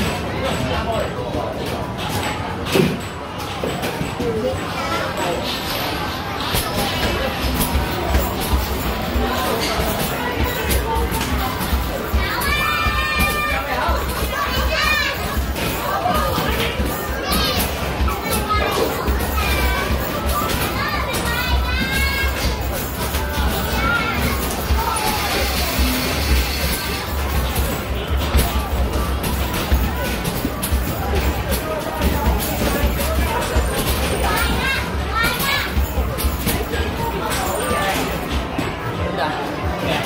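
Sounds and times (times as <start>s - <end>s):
children's voices: 3.4s - 40.0s
basketballs hitting backboard and rim: 6.4s - 36.8s.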